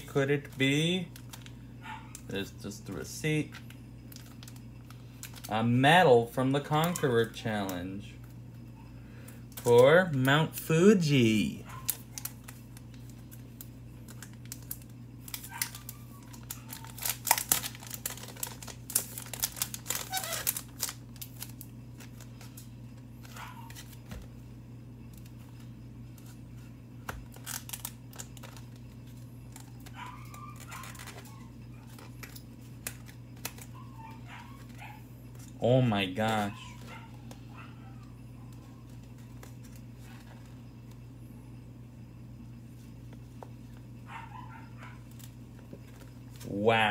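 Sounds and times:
packaging crinkling and tearing: 0.0 - 2.2, 3.5 - 5.5, 11.8 - 24.2, 27.0 - 35.6
steady low hum: 0.0 - 46.9
paper booklet rustling: 11.0 - 22.6.

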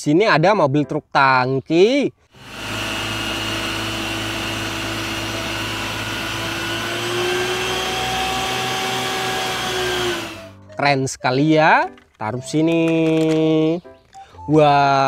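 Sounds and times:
truck engine and pump running: 2.4 - 10.5.

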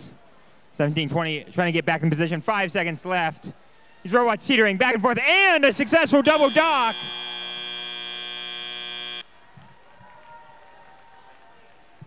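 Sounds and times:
faint background noise: 0.0 - 12.0
buzzer tone: 6.1 - 9.2.

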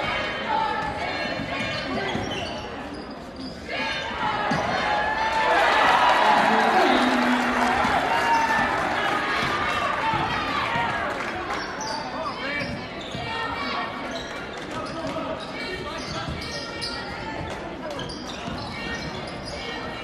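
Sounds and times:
crowd chatter in echoing hall: 0.0 - 20.0
sneaker squeaks: 0.8 - 4.8, 11.5 - 20.0.

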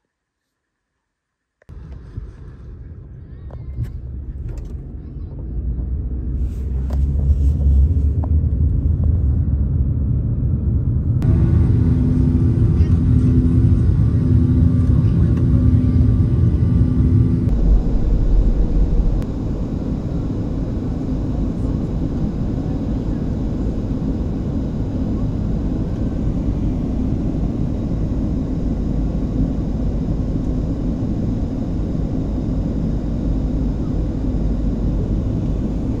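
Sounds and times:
car road and engine rumble: 1.7 - 13.5, 14.7 - 20.3.

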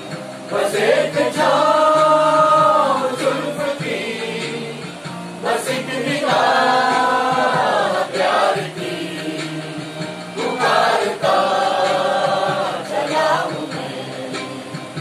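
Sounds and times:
karaoke backing track: 0.0 - 15.0
mixed chorus singing: 0.0 - 15.0.

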